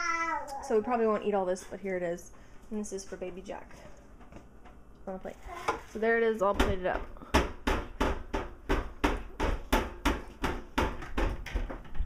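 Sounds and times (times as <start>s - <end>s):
rapid knocking on hard surface: 6.5s - 11.9s.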